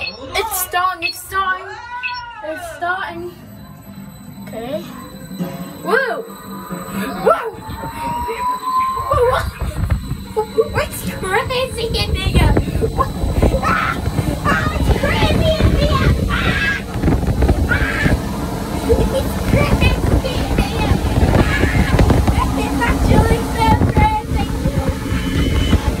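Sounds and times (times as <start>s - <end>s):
child laughing and shrieking: 7.1s - 10.8s, 12.8s - 17.0s, 17.7s - 18.2s
wind buffeting microphone: 7.2s - 26.0s.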